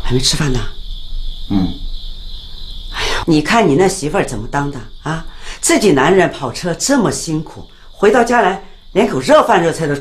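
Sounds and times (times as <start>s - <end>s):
crickets trilling: 0.0s - 10.0s.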